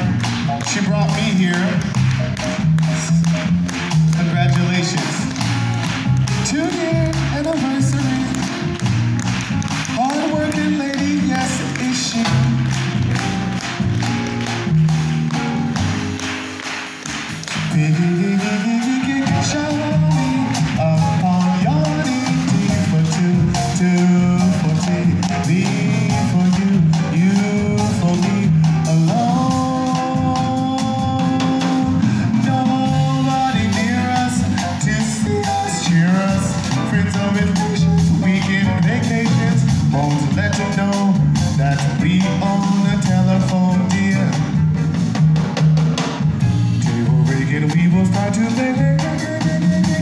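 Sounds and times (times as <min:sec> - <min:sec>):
man singing: 0:00.0 - 0:08.9, 0:09.5 - 0:13.3, 0:17.6 - 0:44.8, 0:46.7 - 0:50.0
double bass low notes: 0:00.0 - 0:16.2, 0:17.4 - 0:50.0
drums: 0:00.0 - 0:50.0
live jazz band: 0:00.0 - 0:50.0
piano: 0:00.0 - 0:50.0.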